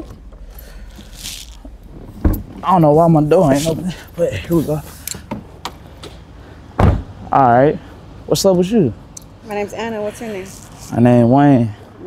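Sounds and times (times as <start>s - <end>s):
car door shutting thump: 1.9s - 2.6s, 6.8s - 7.2s.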